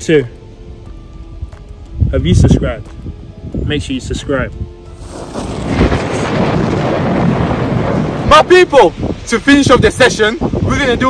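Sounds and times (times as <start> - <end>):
loud rushing noise: 5.0 - 9.2
low rumble: 5.0 - 9.2.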